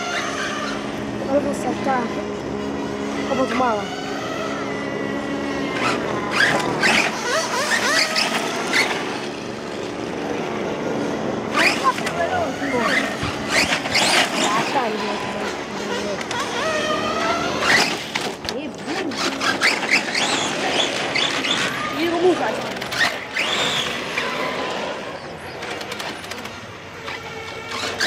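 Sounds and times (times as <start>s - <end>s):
toy car motor whining: 0.0s - 28.0s.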